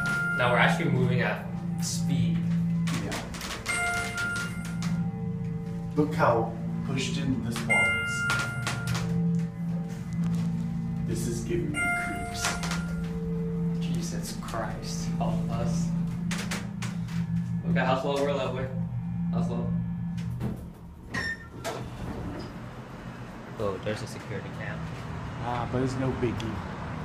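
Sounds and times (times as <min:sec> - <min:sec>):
faint higher tones: 0:00.0 - 0:21.7
elevator low hum: 0:00.0 - 0:27.0
elevator doors sliding open: 0:02.6 - 0:05.4, 0:19.9 - 0:25.2.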